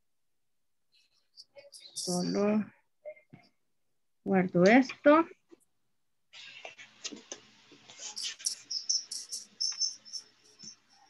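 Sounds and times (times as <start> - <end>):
high-pitched chirping: 1.4 - 2.5, 8.1 - 11.0.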